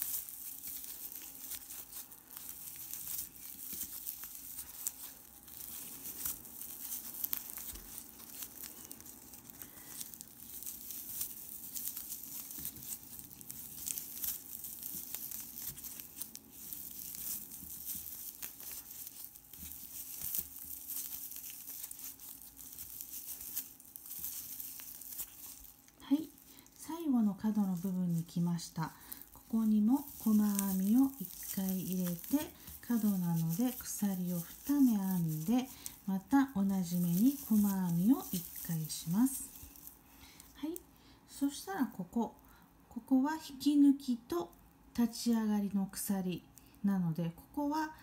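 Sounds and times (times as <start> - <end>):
yarn rustling and crinkling: 0.0 - 42.4.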